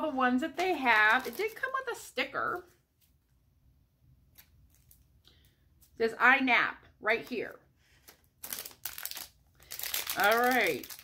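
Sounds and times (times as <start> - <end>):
plastic packaging crinkling: 0.5 - 1.9, 4.3 - 5.1, 7.9 - 11.0.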